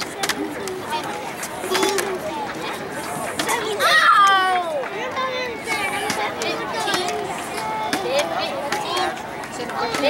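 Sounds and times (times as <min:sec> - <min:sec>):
overlapping chatter: 0:00.0 - 0:10.0.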